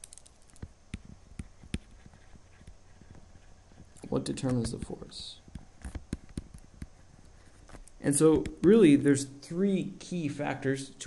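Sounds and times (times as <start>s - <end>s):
stylus tapping on graphics tablet: 0.0s - 8.8s.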